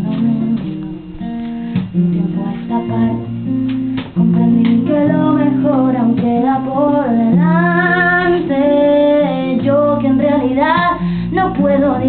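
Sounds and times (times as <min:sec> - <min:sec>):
woman singing: 0:00.0 - 0:01.1, 0:02.0 - 0:12.0
acoustic guitar: 0:00.0 - 0:12.0.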